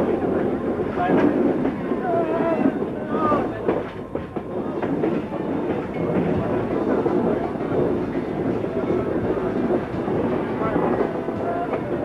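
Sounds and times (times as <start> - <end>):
steady train rumble: 0.0 - 12.0
train wheels clattering over rail joints: 0.0 - 12.0.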